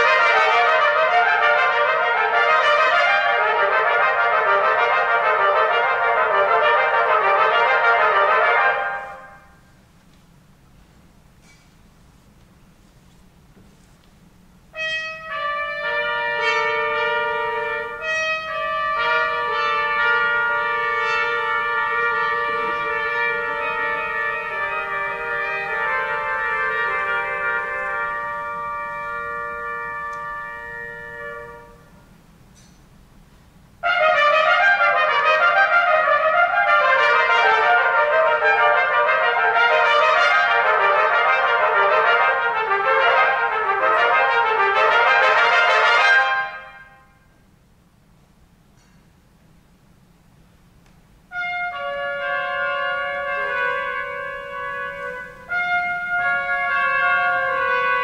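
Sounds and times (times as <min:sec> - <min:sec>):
trumpets playing: 0:00.0 - 0:09.8, 0:14.7 - 0:32.3, 0:33.8 - 0:47.4, 0:51.3 - 0:58.0.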